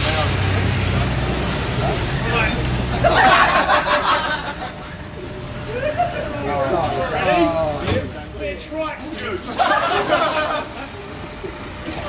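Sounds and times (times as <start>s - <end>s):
street traffic rumble: 0.0s - 12.0s
men shouting and whooping: 5.6s - 7.8s.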